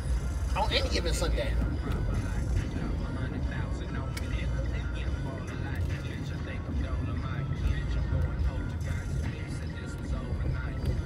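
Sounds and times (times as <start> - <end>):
car road and engine rumble: 0.0 - 11.0.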